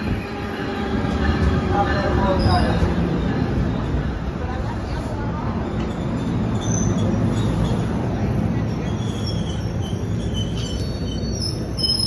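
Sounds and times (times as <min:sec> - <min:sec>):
train wheels rumbling on rail: 0:00.0 - 0:12.0
train brakes squealing: 0:05.6 - 0:12.0.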